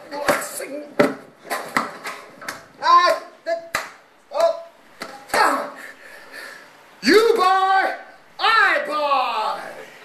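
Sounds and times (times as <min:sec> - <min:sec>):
sharp knocks or slaps: 0:00.2 - 0:05.6.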